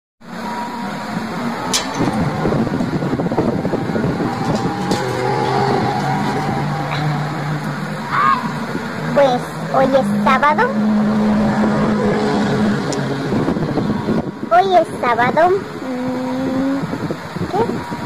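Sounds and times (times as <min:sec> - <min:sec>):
street traffic noise: 0:00.2 - 0:18.0
vehicle engine running: 0:00.2 - 0:18.0.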